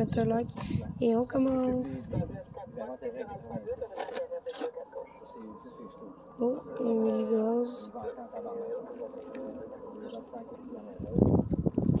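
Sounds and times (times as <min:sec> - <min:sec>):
indistinct voices talking: 0:00.0 - 0:12.0
faint steady high tone: 0:05.2 - 0:10.9.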